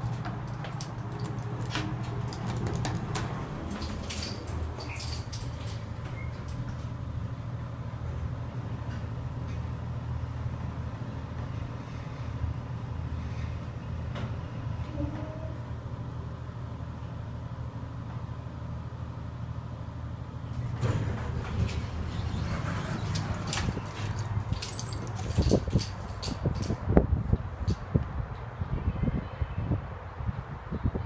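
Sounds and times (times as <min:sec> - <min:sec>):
elevator doors sliding open: 0:00.0 - 0:07.6, 0:10.5 - 0:16.0, 0:20.5 - 0:27.0
elevator low hum: 0:00.0 - 0:28.8.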